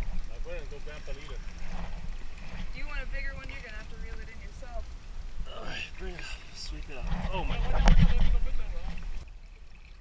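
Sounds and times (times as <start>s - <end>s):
water splashing and churning: 0.0s - 10.0s.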